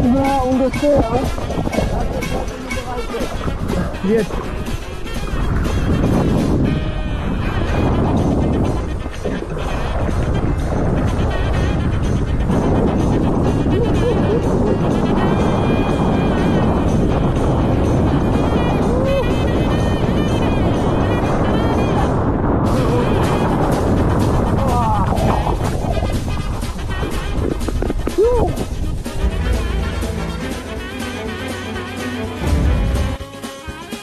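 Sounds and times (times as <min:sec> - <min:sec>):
wind buffeting camera: 0:00.0 - 0:30.5
rushing water and spray: 0:00.0 - 0:33.2
background music: 0:00.0 - 0:34.0.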